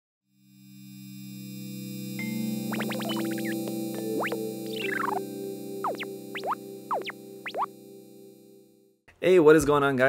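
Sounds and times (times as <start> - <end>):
synthesizer jingle: 1.6 - 8.8.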